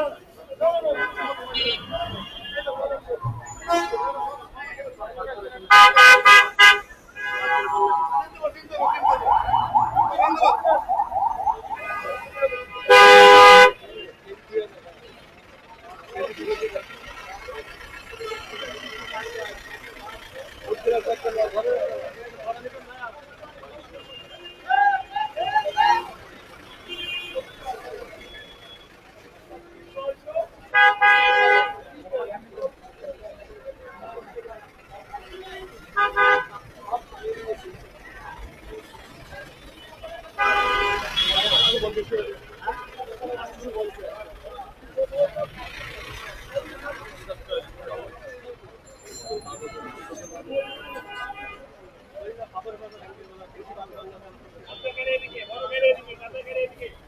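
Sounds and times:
crowd chatter and calls: 0.0 - 57.0
people talking over one another: 0.0 - 57.0
street traffic: 0.0 - 57.0
vehicle horn honking: 12.1 - 13.8, 40.4 - 41.9.

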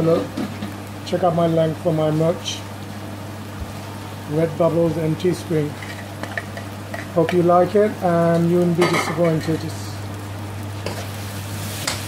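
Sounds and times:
steady low hum: 0.0 - 12.0
food sizzling in a metal pan: 3.7 - 12.0.

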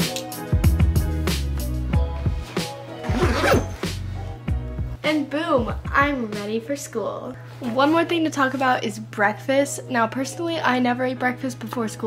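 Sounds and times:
background music with steady beat: 0.0 - 7.6
zip-like rasp of backpack: 2.5 - 4.1.

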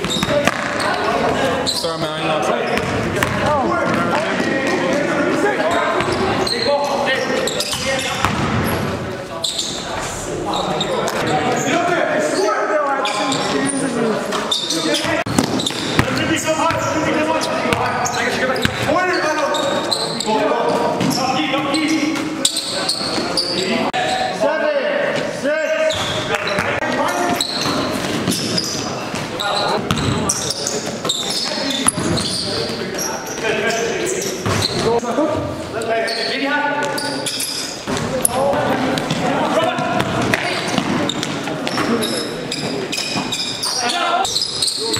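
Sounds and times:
basketballs bouncing on gym floor: 0.0 - 1.4, 2.7 - 6.5, 7.6 - 8.9, 15.0 - 19.0, 25.9 - 33.5, 34.4 - 35.0, 37.8 - 42.0
players' voices and calls: 0.0 - 44.9.

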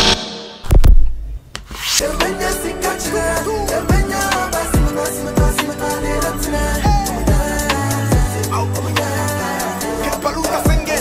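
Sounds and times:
music: 1.7 - 11.0
deep bass hit: 6.4 - 8.5.

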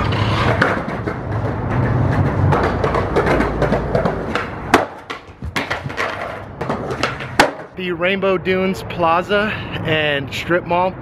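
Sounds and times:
skateboard clattering on pavement: 0.0 - 7.7
skateboard wheels rolling on concrete: 0.0 - 8.3.

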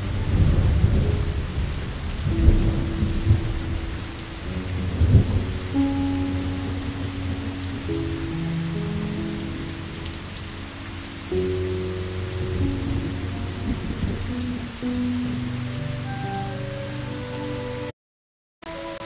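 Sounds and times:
thunder rolling: 0.0 - 16.0
soft music with long held notes: 0.0 - 17.9, 18.6 - 19.0
steady rain: 0.0 - 17.9, 18.7 - 19.0.

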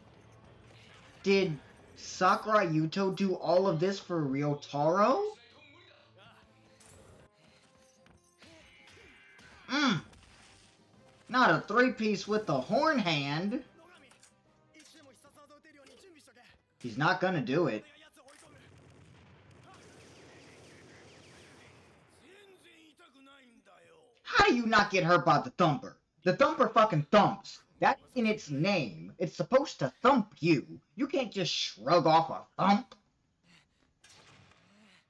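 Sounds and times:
faint battle sound effects: 0.0 - 3.8, 5.3 - 23.8
person speaking dialogue: 1.2 - 5.4, 9.7 - 10.0, 11.3 - 13.6, 16.8 - 17.8, 24.3 - 33.0.

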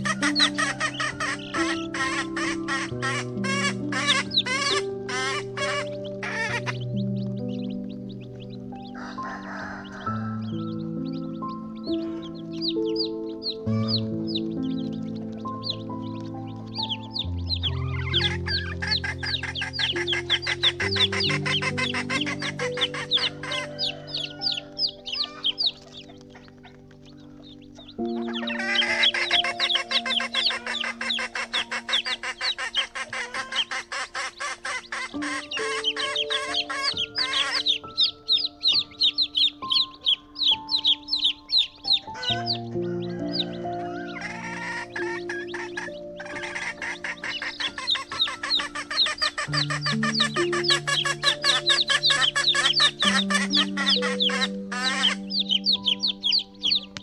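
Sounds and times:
background music of held chords: 0.0 - 57.0
chickens clucking: 0.0 - 57.0.

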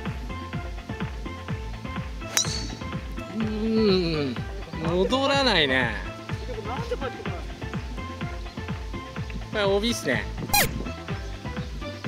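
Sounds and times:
background music: 0.0 - 12.0
golf club striking ball: 2.2 - 3.4.

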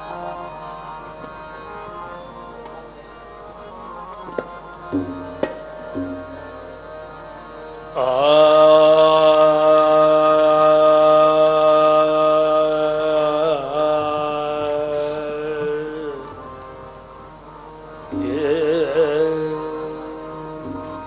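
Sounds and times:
singers holding long note: 0.0 - 3.0, 7.9 - 21.0
harmonium: 0.0 - 21.0.

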